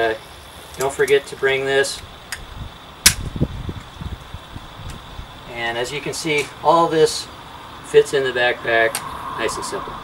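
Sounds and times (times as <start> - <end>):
wind buffeting microphone: 2.0 - 6.1.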